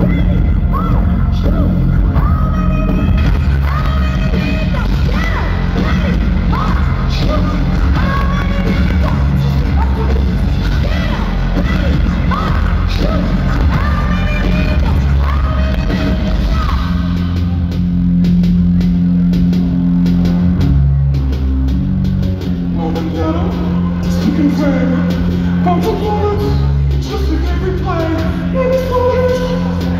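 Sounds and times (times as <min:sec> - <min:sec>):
woman singing: 0:00.0 - 0:17.1
live rock band playing: 0:00.0 - 0:29.9.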